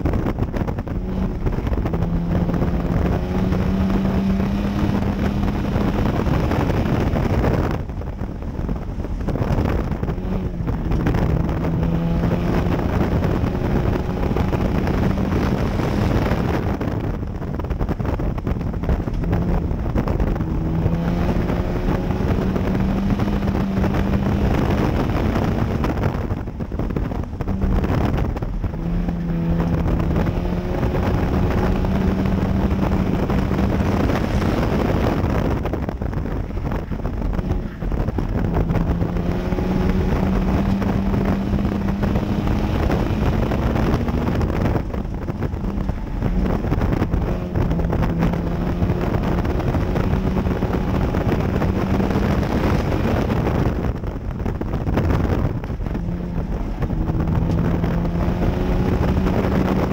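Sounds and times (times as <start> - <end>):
race car engine revving: 0.0 - 59.9
wind and road noise: 0.0 - 59.9.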